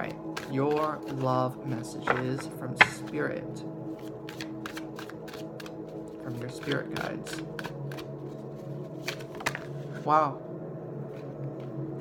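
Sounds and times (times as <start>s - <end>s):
cards being shuffled: 0.0s - 3.2s, 4.0s - 10.0s
quiet background music: 0.0s - 12.0s
card snaps: 2.0s - 3.1s.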